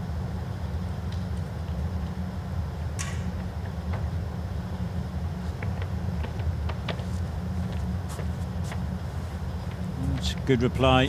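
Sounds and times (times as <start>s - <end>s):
low indoor arena hum: 0.0s - 11.0s.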